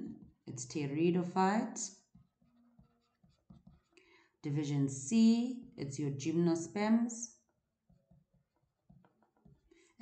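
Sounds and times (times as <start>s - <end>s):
stylus tapping and scraping on screen: 0.0s - 0.7s, 1.7s - 4.4s, 7.2s - 10.0s.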